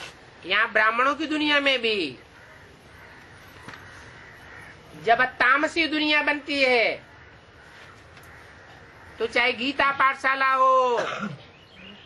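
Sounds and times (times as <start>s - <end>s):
distant bird calls: 0.0s - 12.0s.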